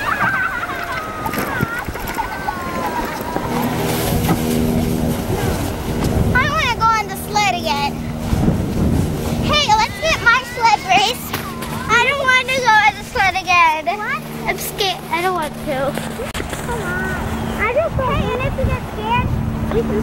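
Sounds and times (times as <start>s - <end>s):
children shrieking and yelling: 0.0s - 3.8s, 9.4s - 14.0s
steady low hum: 0.0s - 20.0s.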